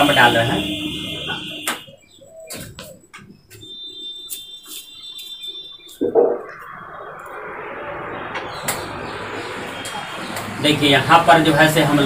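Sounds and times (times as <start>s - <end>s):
marker squeaking on whiteboard: 1.8s - 6.7s
steady rushing noise: 6.0s - 12.0s.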